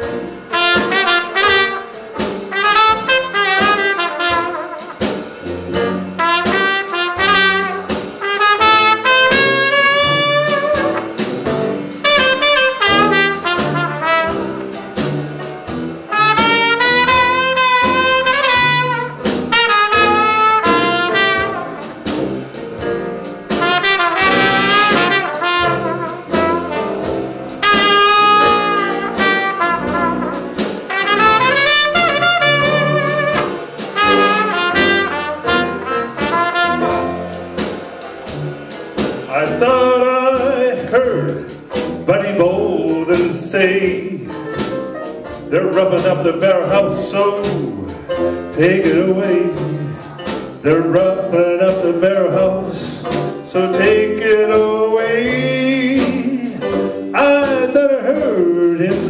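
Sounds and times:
jazz band playing slow blues: 0.0 - 59.0
trumpet with wavering notes: 0.5 - 5.1, 6.2 - 11.0, 12.0 - 14.5, 16.1 - 21.9, 23.6 - 37.1.

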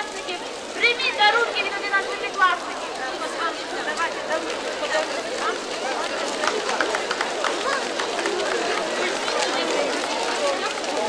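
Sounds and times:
crowd of children and adults chattering: 0.0 - 11.0.

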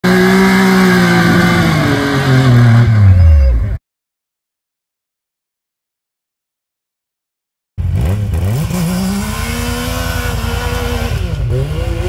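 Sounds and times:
engine revving hard: 0.0 - 3.1, 7.8 - 12.0.

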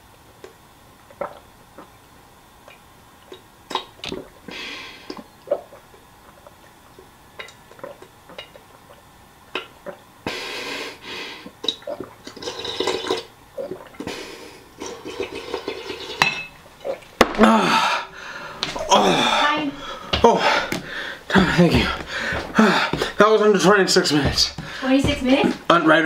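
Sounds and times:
milk gulped and slurped: 0.4 - 2.0, 2.6 - 10.1, 11.4 - 16.2, 16.8 - 17.2
person gasping for breath: 17.4 - 23.2.

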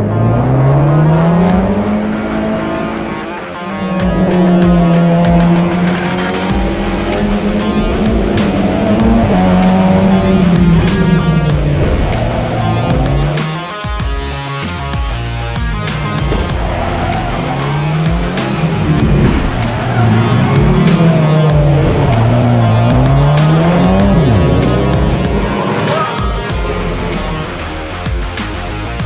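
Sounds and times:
music: 0.0 - 29.0
race car engine accelerating: 0.0 - 29.0.

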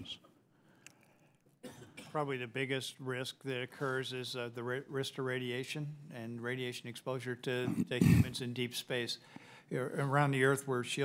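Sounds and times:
man clearing his throat: 1.6 - 2.2, 7.6 - 8.4.

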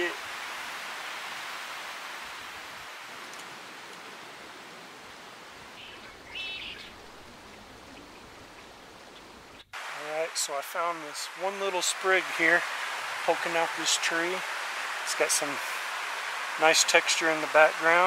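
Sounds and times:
woodland ambience hiss: 0.0 - 18.0
bird chirp: 5.8 - 9.7.

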